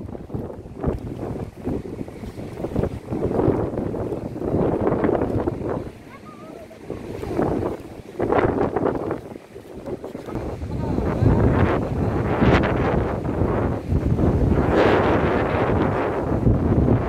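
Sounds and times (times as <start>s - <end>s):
surf washing: 0.0s - 17.0s
wind buffeting microphone: 0.0s - 17.0s.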